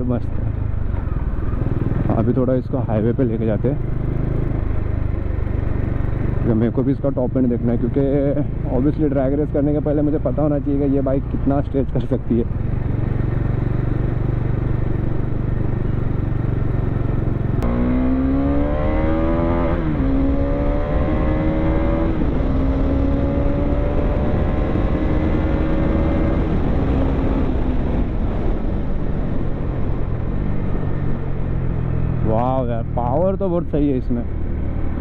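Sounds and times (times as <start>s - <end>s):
low wind rumble: 0.0s - 35.0s
motorcycle engine accelerating: 0.0s - 35.0s.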